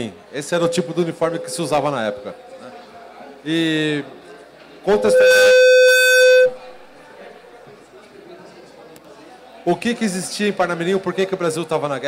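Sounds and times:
microphone feedback howl: 0.6 - 2.4, 4.9 - 6.8.

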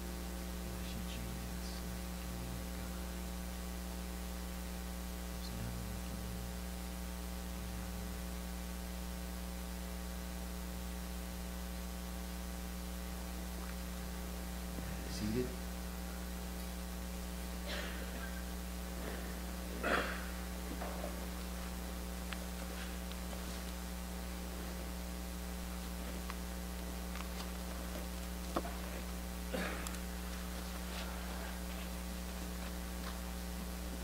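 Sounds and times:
electrical mains hum: 0.0 - 34.0.

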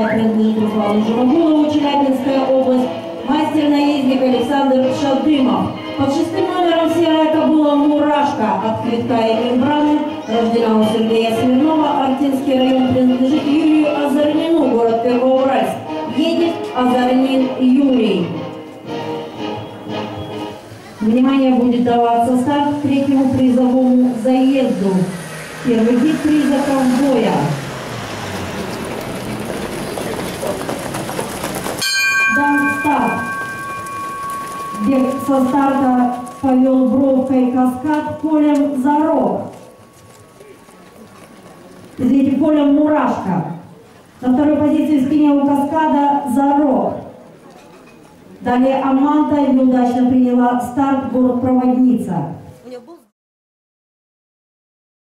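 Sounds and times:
crowd voices: 19.6 - 45.2
hooves and wheels rumbling: 21.4 - 45.8.

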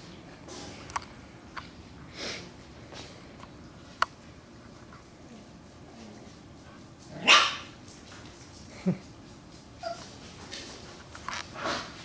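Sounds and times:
puppy barking: 7.2 - 7.7.

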